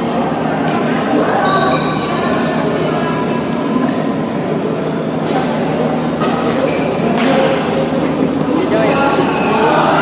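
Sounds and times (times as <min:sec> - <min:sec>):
steady hum: 0:00.0 - 0:10.0
racket striking shuttlecock: 0:06.2 - 0:07.7.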